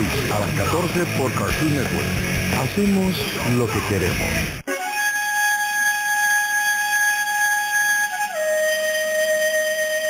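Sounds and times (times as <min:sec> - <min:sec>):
flute holding high note: 0:04.6 - 0:10.0.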